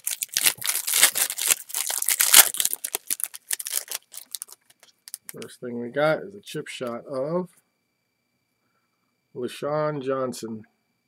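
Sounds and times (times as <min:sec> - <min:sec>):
foil wrapper tearing and crinkling: 0:00.0 - 0:05.4.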